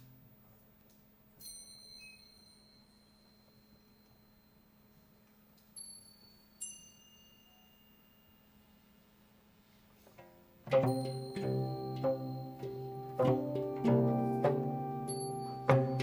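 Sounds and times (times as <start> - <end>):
high metal chime tones: 1.4 - 9.6, 10.3 - 16.0.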